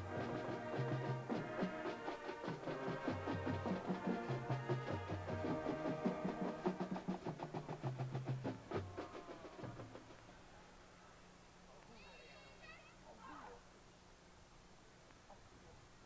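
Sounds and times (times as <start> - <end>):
drum strikes: 0.0 - 10.2
marching band playing: 0.0 - 10.2.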